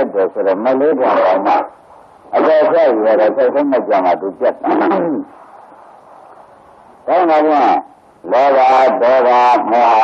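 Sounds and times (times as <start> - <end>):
man preaching: 0.0 - 5.3, 7.0 - 10.0
recording hiss: 0.0 - 10.0.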